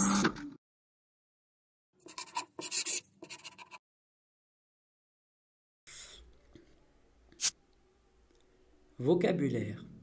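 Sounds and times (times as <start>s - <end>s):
pen scratching on paper: 2.0s - 3.8s.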